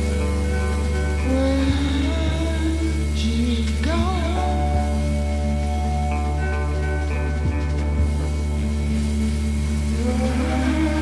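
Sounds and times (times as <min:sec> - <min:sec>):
bowed electric guitar drones: 0:00.0 - 0:11.0
deep low hum: 0:00.0 - 0:11.0.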